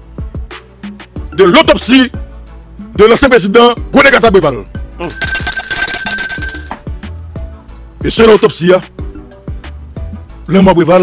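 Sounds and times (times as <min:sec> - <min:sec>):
background music with low notes: 0:00.0 - 0:05.2, 0:06.7 - 0:11.0
bell-like ringing tone: 0:05.0 - 0:07.2.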